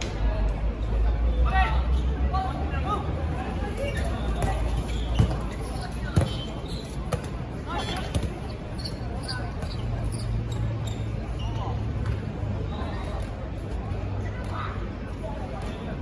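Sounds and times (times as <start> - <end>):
dodgeballs hitting court and players: 3.8 - 10.6.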